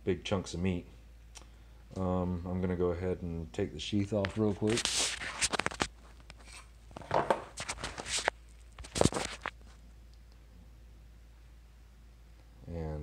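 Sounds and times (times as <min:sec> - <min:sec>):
knife drawn from plastic sheath: 0:04.6 - 0:06.7, 0:07.3 - 0:09.5.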